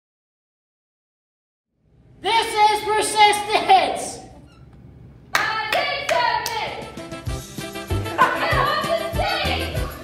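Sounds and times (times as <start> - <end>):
hand claps: 5.3 - 6.8
girls chanting: 8.2 - 10.0.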